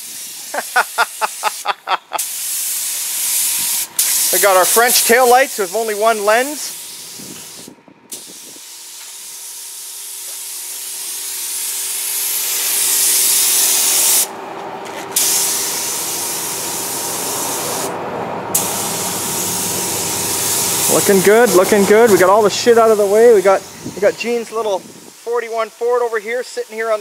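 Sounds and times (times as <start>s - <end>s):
spray gun hissing: 0.0s - 14.3s, 15.2s - 17.9s, 18.6s - 27.0s.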